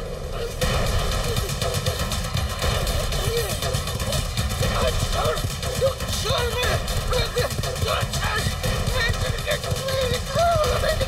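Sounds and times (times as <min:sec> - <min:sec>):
man crying out: 0:10.1 - 0:11.0.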